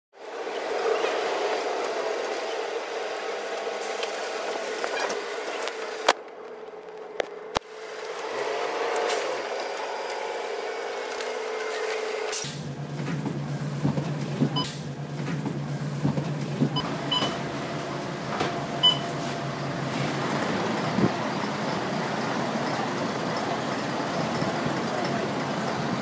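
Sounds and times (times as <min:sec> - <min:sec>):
bus engine and road hum: 0:00.2 - 0:26.0.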